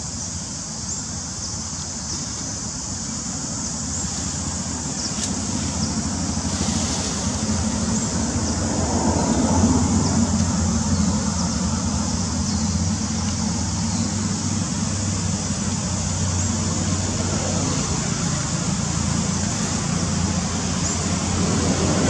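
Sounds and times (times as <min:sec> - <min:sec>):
low rumble with hiss: 0:00.0 - 0:22.0.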